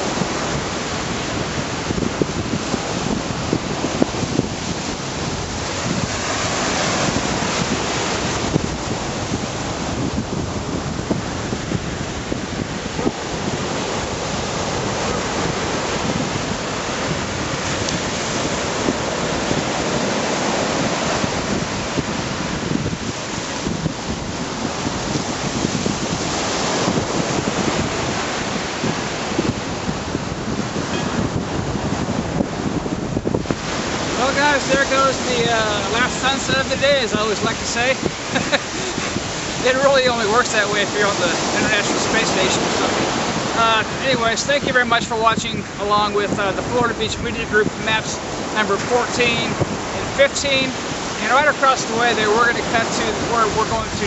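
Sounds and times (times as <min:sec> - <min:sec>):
surf washing onto beach: 0:00.0 - 0:54.0
wind buffeting microphone: 0:00.0 - 0:54.0.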